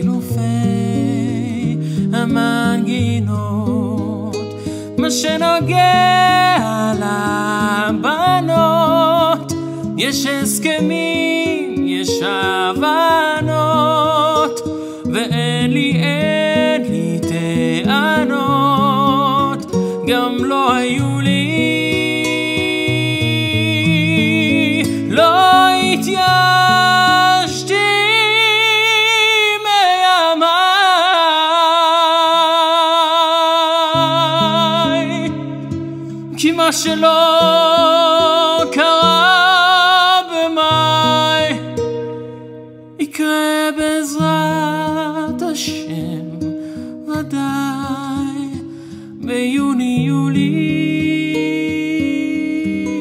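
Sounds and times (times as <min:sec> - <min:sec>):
man singing: 0:00.0 - 0:53.0
plucked acoustic guitar: 0:00.0 - 0:53.0.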